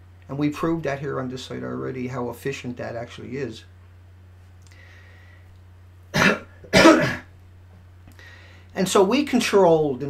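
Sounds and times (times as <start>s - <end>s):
man coughing: 6.2s - 7.3s.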